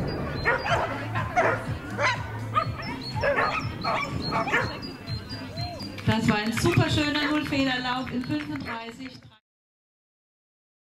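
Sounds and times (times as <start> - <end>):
dog barking: 0.4 - 4.8.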